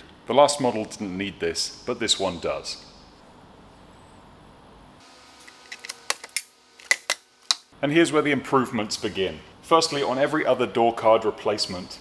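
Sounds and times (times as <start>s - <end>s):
room tone hiss: 0.0s - 12.0s.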